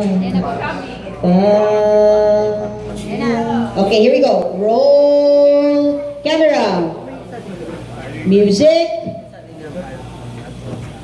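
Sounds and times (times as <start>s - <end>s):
murmur of indistinct chatter: 0.0s - 11.0s
steady low hum: 0.0s - 11.0s.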